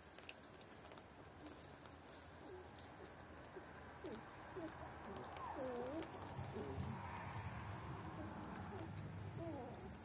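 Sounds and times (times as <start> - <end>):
puppies whimpering: 3.6 - 7.0, 8.1 - 10.0.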